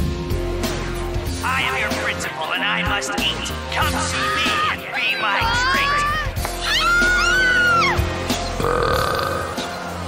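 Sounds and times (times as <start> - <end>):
background music: 0.0 - 10.0
cartoon burp: 8.5 - 9.7.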